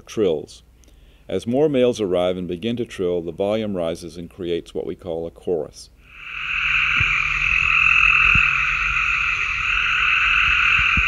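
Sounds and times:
tree frogs trilling: 0:06.1 - 0:11.0.

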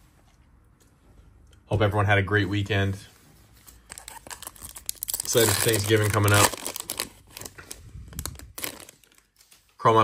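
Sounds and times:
foil wrapper crinkling: 0:03.8 - 0:09.4.

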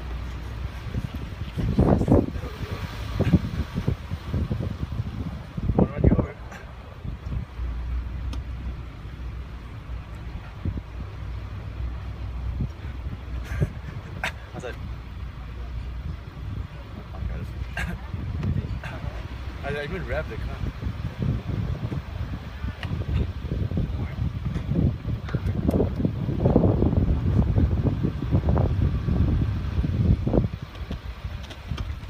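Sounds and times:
car engine and tyres rumbling: 0:00.0 - 0:32.0.

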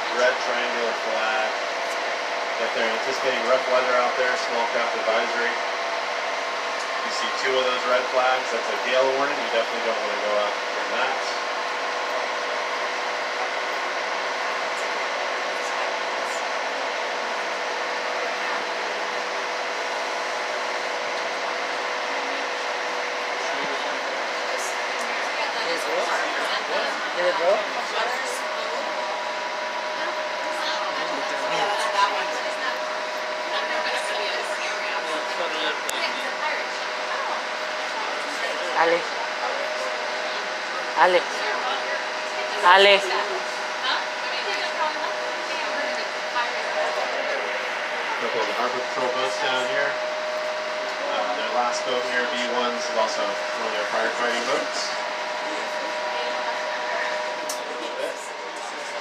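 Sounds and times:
boat engine humming: 0:00.0 - 0:59.0.

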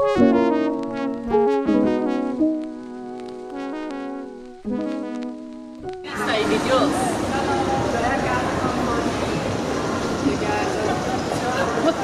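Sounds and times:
faint voices: 0:06.1 - 0:12.0
moving walkway mechanical rumble: 0:06.2 - 0:12.0.

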